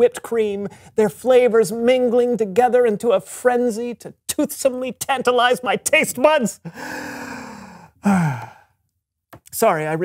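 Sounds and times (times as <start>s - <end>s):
man sighing: 6.6s - 8.8s.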